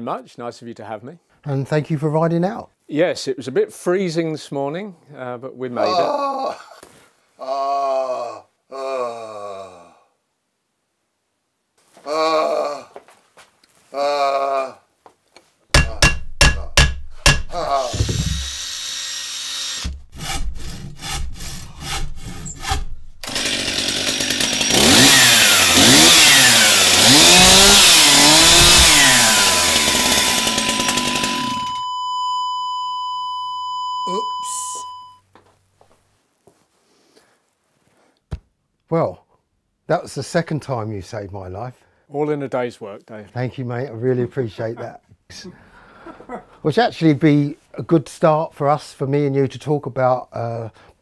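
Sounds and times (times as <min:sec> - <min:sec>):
short vocal sounds from person: 0:12.0 - 0:13.0, 0:34.1 - 0:34.9
sharp knocks: 0:15.7 - 0:18.5, 0:27.0 - 0:30.2
steady high tone: 0:28.2 - 0:35.2.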